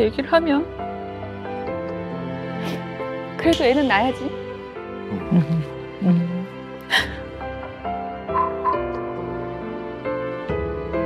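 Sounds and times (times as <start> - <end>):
soft sad background music: 0.0 - 11.0
woman crying: 5.1 - 7.3.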